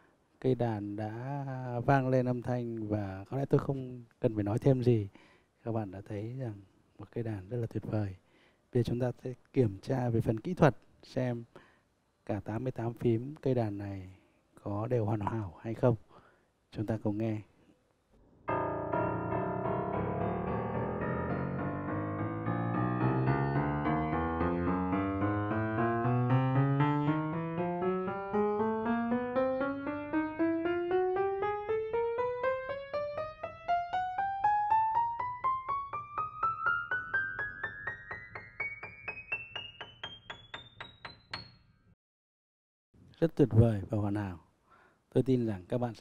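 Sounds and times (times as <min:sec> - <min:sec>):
piano keys played ascending: 0:18.5 - 0:41.7.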